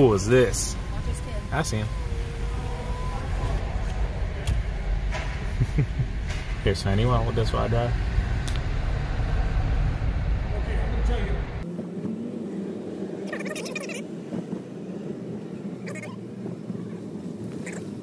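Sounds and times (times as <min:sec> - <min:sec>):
car cabin rumble: 0:00.0 - 0:11.6
road hum: 0:00.0 - 0:18.0.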